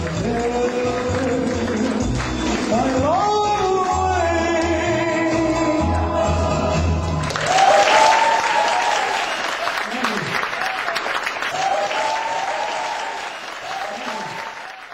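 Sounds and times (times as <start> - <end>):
audience applause: 0.0 - 3.3, 7.0 - 14.9.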